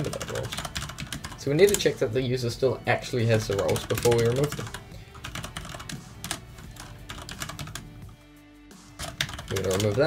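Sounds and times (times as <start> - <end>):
computer keyboard typing: 0.0 - 2.0, 3.3 - 8.2, 8.9 - 10.0.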